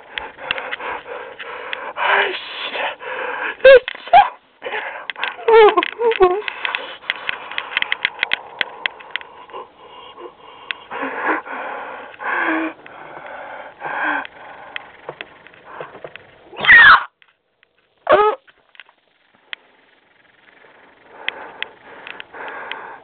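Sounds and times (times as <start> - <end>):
breathy wheezing cartoon vocals: 0.0 - 6.8
loud cries with bending pitch: 16.6 - 17.1.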